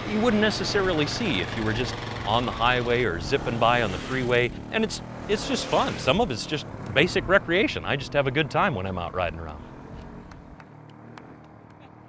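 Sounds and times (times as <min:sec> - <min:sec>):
quad bike engines running: 0:00.0 - 0:12.0.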